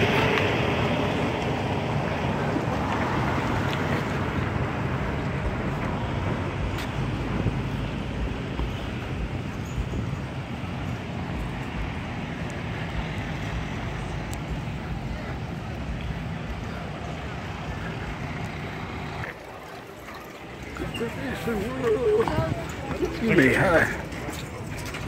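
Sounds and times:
faint voices: 0.0 - 25.0.

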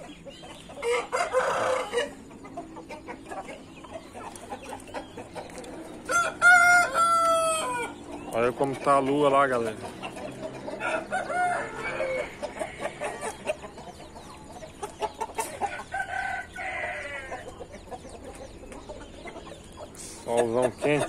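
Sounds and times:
chickens clucking: 0.0 - 21.0
roosters crowing: 0.0 - 21.0.

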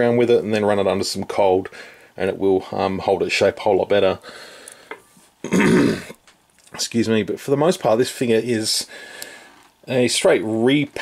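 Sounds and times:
man clearing his throat: 5.4 - 6.2.

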